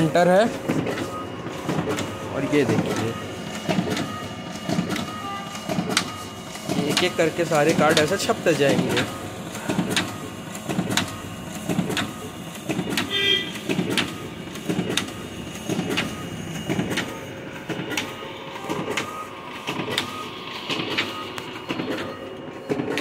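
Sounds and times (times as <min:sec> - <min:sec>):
printer machine clattering: 0:00.0 - 0:23.0.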